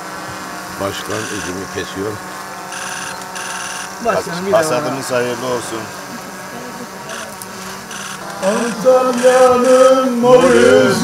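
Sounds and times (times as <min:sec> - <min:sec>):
electronic ringtone trilling: 0:01.1 - 0:01.7, 0:02.7 - 0:04.0, 0:07.9 - 0:09.9.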